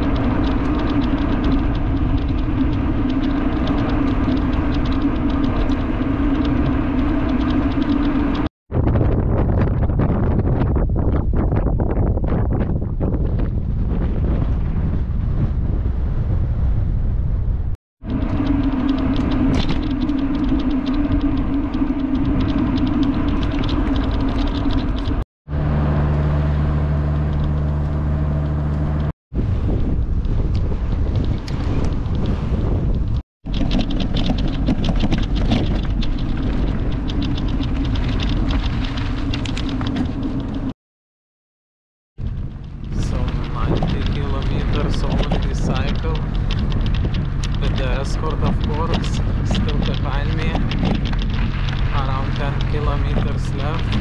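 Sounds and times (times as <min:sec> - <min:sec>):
vehicle engine hum: 0:00.0 - 0:08.5, 0:17.0 - 0:40.7, 0:42.2 - 0:54.0
wind buffeting microphone: 0:00.0 - 0:40.7, 0:42.2 - 0:54.0.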